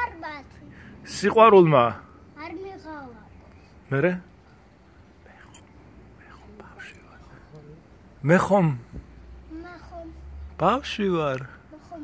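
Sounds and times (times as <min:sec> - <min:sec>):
person whispering: 0:05.2 - 0:07.5.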